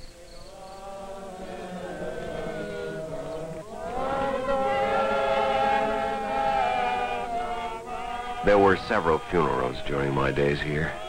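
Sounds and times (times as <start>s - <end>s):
group of voices chanting: 0.0s - 11.0s.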